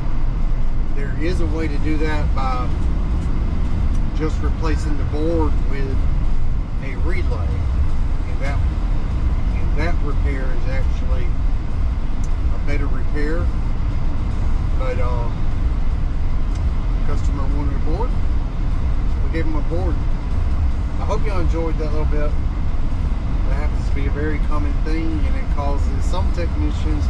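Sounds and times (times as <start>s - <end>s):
road and engine rumble in van: 0.0s - 27.0s
man talking: 0.9s - 2.8s, 4.0s - 6.0s, 6.8s - 8.7s, 9.4s - 11.4s, 12.3s - 13.5s, 14.8s - 15.5s, 17.0s - 18.2s, 19.2s - 20.0s, 21.0s - 22.4s, 23.4s - 27.0s.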